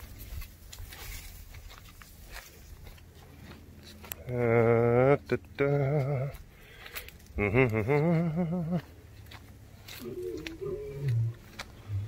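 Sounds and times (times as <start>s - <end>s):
lion grunting: 10.0s - 12.0s.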